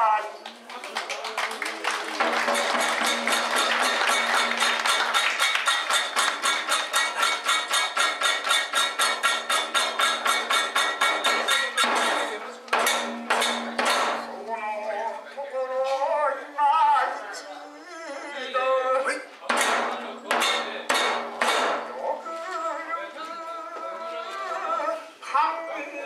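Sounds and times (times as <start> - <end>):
hand cymbals clashing: 2.4 - 14.3.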